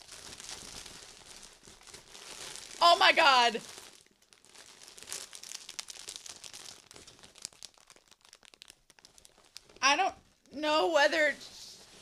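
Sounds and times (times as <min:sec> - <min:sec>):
plastic bag crinkling: 0:00.0 - 0:10.5.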